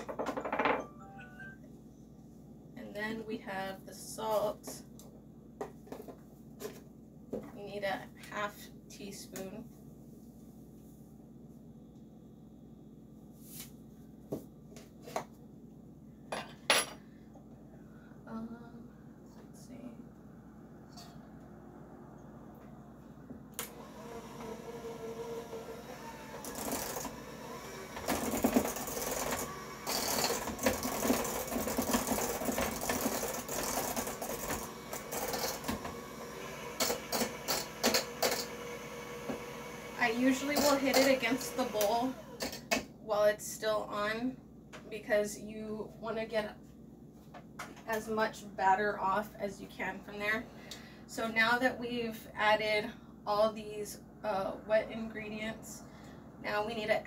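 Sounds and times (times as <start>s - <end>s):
electric hand mixer running: 23.6s - 42.7s.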